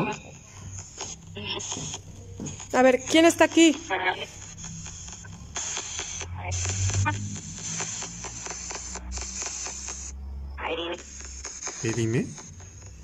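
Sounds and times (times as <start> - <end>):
radio broadcast fragments: 0.0 - 13.0
radio static bursts: 0.0 - 13.0.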